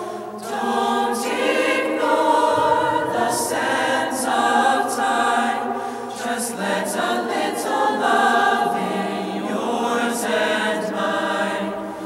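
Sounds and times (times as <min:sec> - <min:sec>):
mixed choir singing a cappella: 0:00.0 - 0:12.0.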